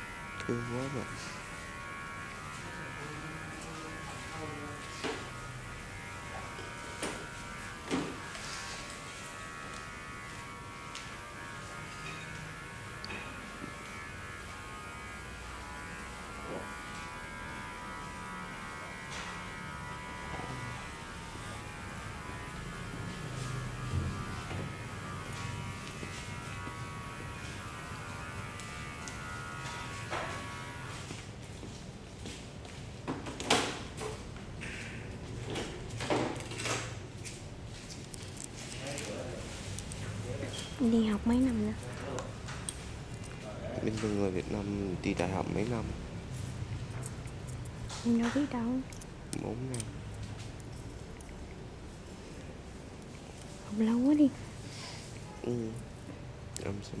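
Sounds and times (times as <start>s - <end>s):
small electric motor buzzing: 0.0s - 31.0s, 40.7s - 42.2s.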